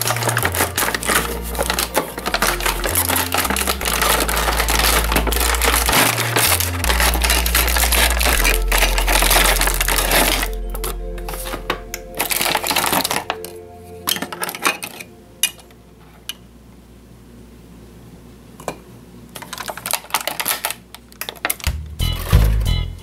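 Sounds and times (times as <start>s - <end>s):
background music with bass line: 0.0s - 14.0s, 21.7s - 23.0s
plastic packaging rustling: 0.0s - 16.3s, 19.3s - 22.5s.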